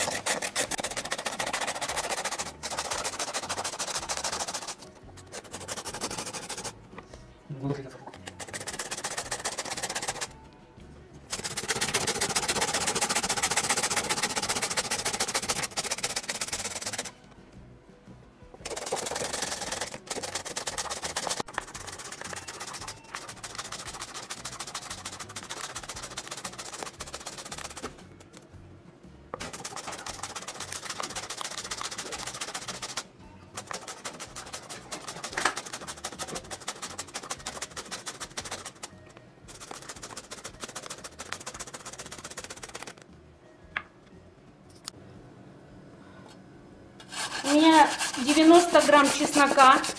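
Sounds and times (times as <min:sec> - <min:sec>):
carrot grating rasping: 0:00.0 - 0:06.8, 0:08.0 - 0:10.4, 0:11.3 - 0:17.1, 0:18.6 - 0:28.0, 0:29.4 - 0:43.0, 0:47.0 - 0:49.9.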